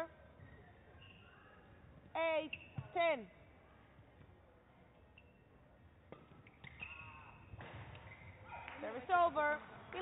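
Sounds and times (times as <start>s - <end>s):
shoe squeaking on floor: 2.3s - 3.1s, 6.4s - 8.4s.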